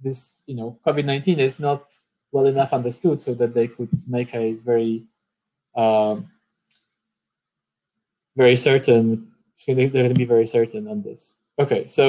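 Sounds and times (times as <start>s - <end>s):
person saying uh: 0.0s - 1.8s, 2.4s - 5.0s, 5.8s - 6.2s, 8.4s - 12.0s.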